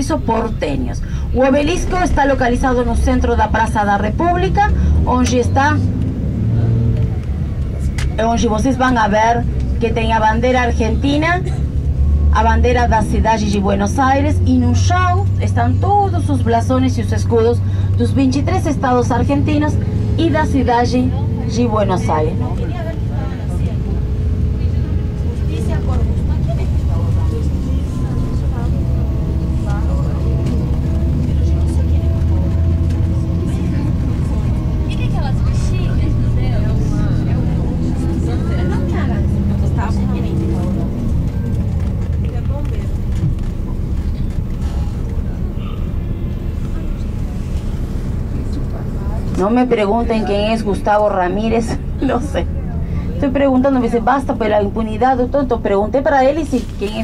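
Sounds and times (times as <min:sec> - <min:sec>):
bus engine and road rumble: 0:00.0 - 0:57.0
faint passenger chatter: 0:00.0 - 0:57.0.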